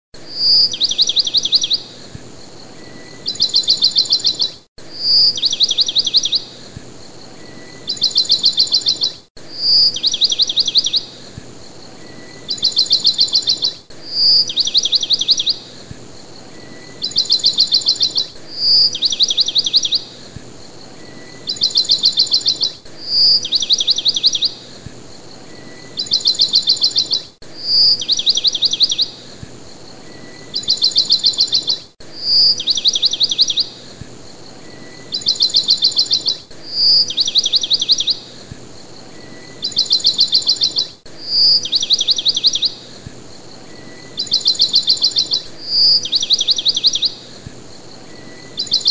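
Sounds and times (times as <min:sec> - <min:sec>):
bird chirping and trilling: 0:00.2 - 0:48.9.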